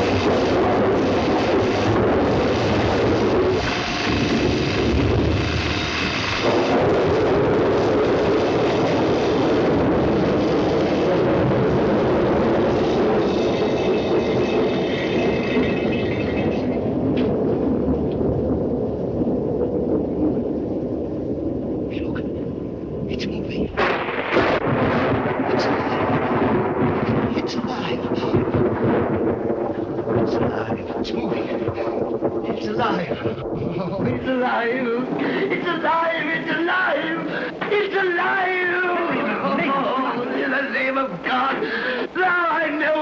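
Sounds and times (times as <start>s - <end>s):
high electric hum: 0.0s - 29.4s
electrical apparatus buzz and crackle: 0.0s - 37.8s
thunderstorm rumble: 0.0s - 43.0s.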